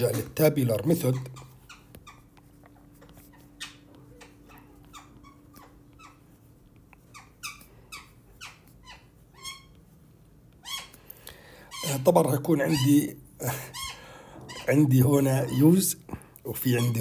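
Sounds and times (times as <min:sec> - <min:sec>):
stylus squeaking on glass screen: 0:00.0 - 0:17.0.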